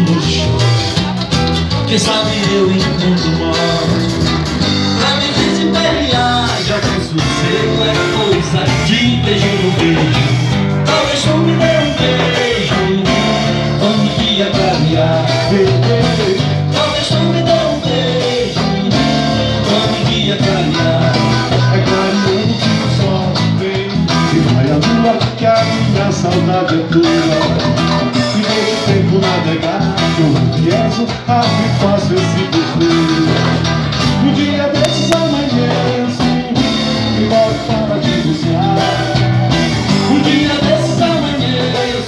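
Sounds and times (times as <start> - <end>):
live band playing dance rhythm: 0.0 - 42.0.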